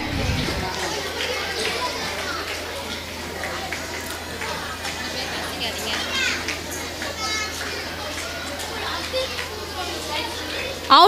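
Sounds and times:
loud announcer voice: 0.0s - 0.9s
low hum: 0.0s - 1.0s
children chattering: 0.0s - 11.0s.

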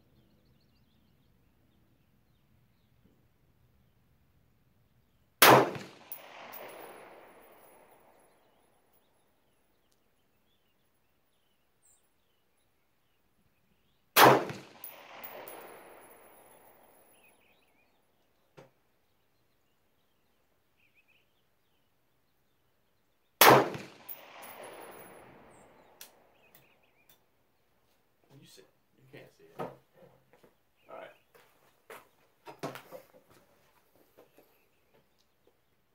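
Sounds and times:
rifle shots with echo: 5.4s - 8.6s, 14.2s - 17.3s, 23.4s - 26.5s.

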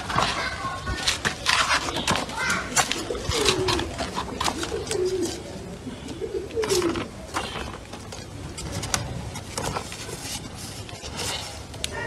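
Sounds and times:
pigeon cooing: 1.5s - 8.8s, 11.3s - 12.0s.

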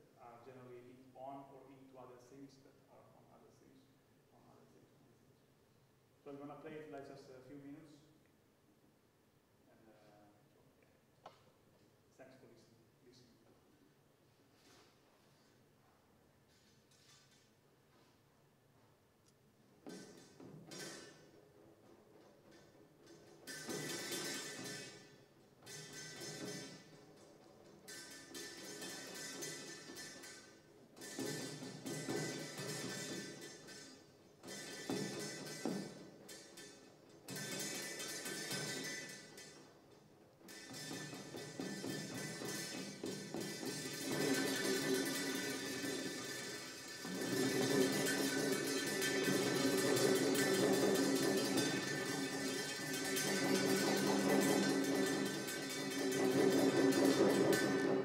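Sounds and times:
metal dish ringing on snare drum: 19.8s - 58.0s.

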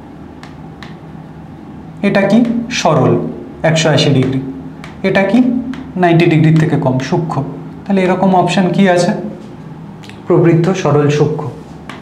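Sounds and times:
low room hum: 0.0s - 12.0s
marker pen writing on whiteboard: 4.1s - 6.8s.

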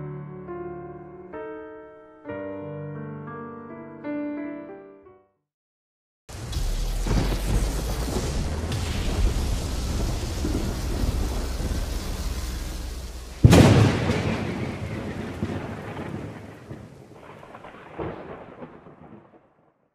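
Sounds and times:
rain-like hiss: 6.3s - 17.7s
loud thunderclap: 6.3s - 19.7s
low thunder rumble: 6.3s - 19.7s.

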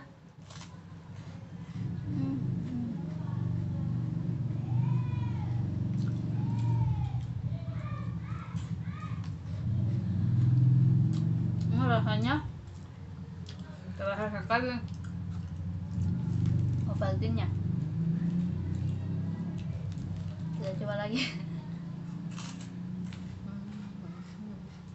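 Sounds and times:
person humming mmm: 1.9s - 3.2s
crunching bites of wafer: 22.1s - 23.8s.

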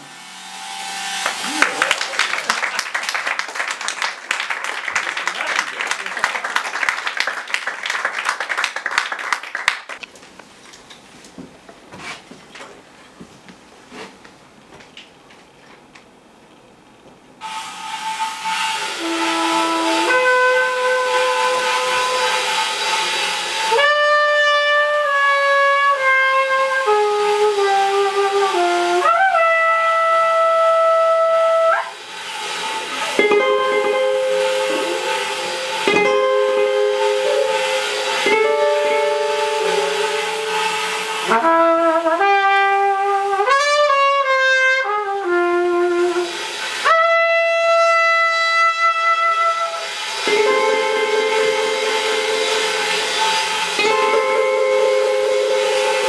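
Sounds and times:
cornet melody: 0.0s - 1.8s, 17.4s - 31.6s, 32.2s - 56.0s
cymbal wash: 0.0s - 2.4s, 17.4s - 29.3s, 30.1s - 41.5s, 45.9s - 56.0s
jazz band playing: 17.4s - 56.0s.

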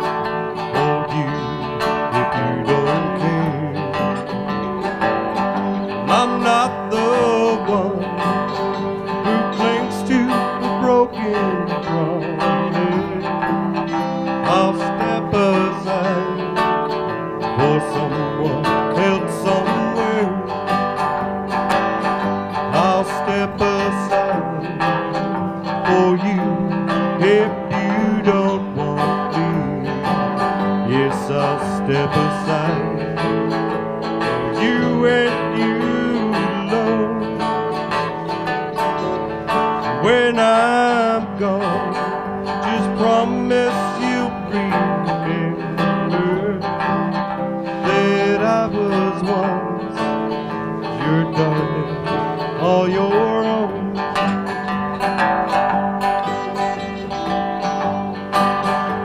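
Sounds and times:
electric bass: 0.0s - 59.0s
person singing: 0.0s - 59.0s
strummed acoustic guitars: 0.0s - 59.0s.

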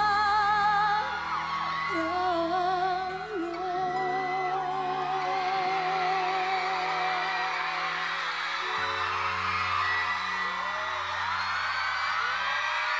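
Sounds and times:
crowd cheering and whooping: 0.1s - 12.9s.

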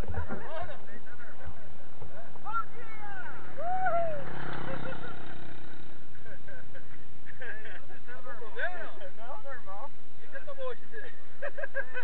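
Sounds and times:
riders shouting: 2.2s - 6.1s
bike wheel rolling on pavement: 3.4s - 6.3s.

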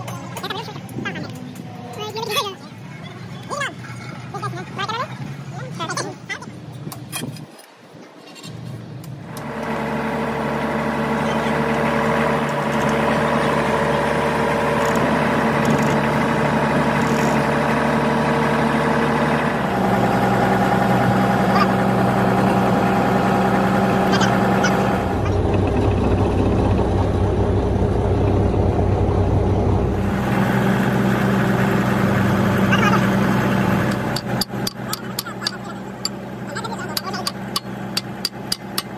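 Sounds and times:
bulldozer diesel engine running: 9.3s - 38.9s
sharp metal taps: 33.9s - 36.2s, 36.9s - 38.9s.

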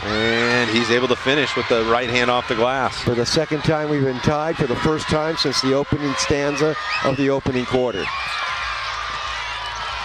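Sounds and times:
crowd voices hum: 0.0s - 10.0s.

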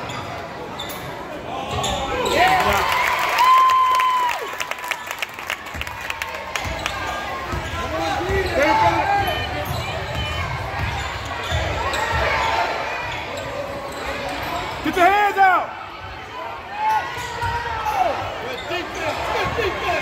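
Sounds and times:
sneakers squeaking: 0.0s - 2.7s, 6.5s - 14.9s, 16.8s - 20.0s
spectators talking: 4.8s - 20.0s.

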